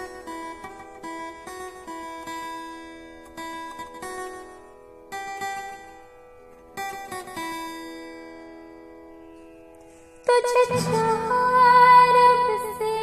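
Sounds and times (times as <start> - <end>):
acoustic guitar plucked: 0.0 - 13.0.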